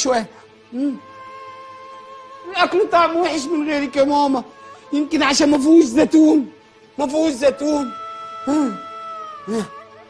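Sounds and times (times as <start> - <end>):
background music held note: 0.0 - 10.0
man whimpering cries: 7.7 - 10.0.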